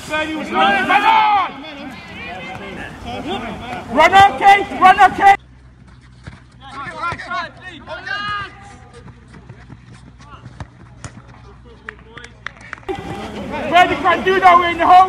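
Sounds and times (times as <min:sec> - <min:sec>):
distant players shouting: 0:00.0 - 0:05.6, 0:06.5 - 0:15.0
close shout: 0:00.1 - 0:02.8.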